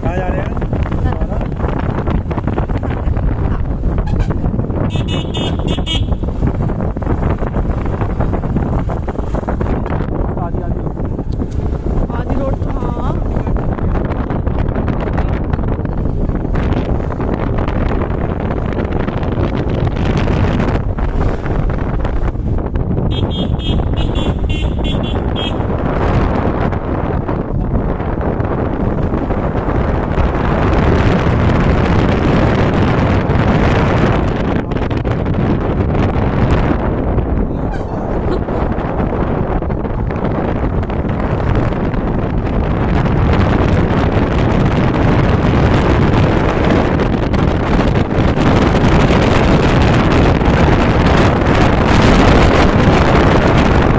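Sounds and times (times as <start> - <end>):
road noise: 0.0 - 53.9
wind buffeting: 0.0 - 53.9
rapidly pulsing horn: 4.0 - 6.3, 23.1 - 25.7, 37.5 - 38.7.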